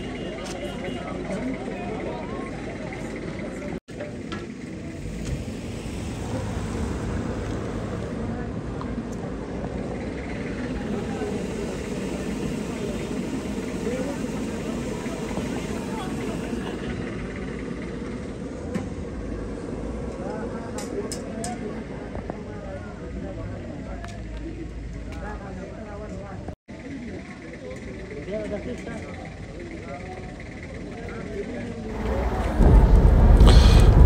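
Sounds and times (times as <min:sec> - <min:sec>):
vehicle engine running: 0:01.5 - 0:20.5, 0:29.3 - 0:34.0
low outdoor rumble: 0:31.5 - 0:34.0.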